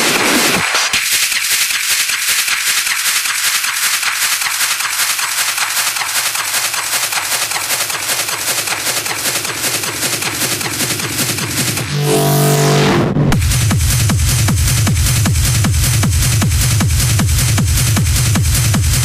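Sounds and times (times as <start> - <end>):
rushing noise sweep: 11.8 - 13.5.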